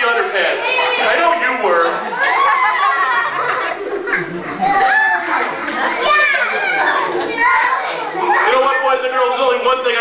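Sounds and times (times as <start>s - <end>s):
children calling out and talking: 0.0s - 9.5s.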